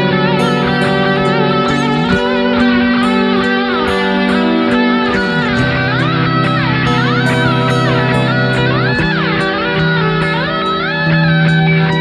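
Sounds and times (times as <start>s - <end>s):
bass guitar: 0.0s - 12.0s
distorted electric guitars: 0.0s - 12.0s
lead guitar line: 0.0s - 12.0s.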